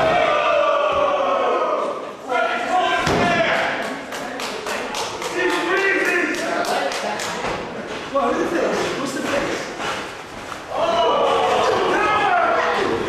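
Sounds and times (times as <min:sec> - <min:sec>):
spectators shouting: 0:00.0 - 0:03.5, 0:10.7 - 0:13.0.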